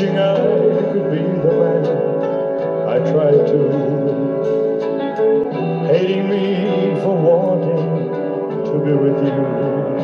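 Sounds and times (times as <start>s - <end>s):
live band playing slow ballad: 0.0s - 10.0s
person singing: 0.0s - 10.0s.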